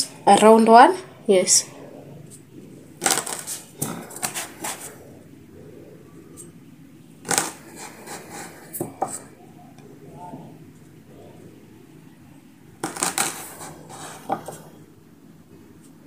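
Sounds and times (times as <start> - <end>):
cup cutting dough on wooden table: 3.0 - 4.9, 7.2 - 9.3, 12.8 - 14.8.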